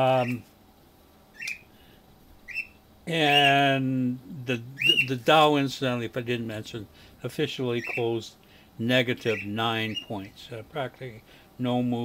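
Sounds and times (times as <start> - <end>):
small bird chirping: 0.1 - 0.5, 1.3 - 1.7, 2.4 - 3.6, 4.8 - 5.2, 7.8 - 8.2, 9.2 - 10.4.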